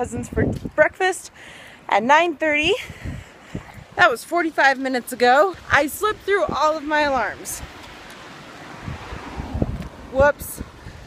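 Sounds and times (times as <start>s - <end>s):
wind buffeting microphone: 0.0s - 1.2s, 2.1s - 11.0s.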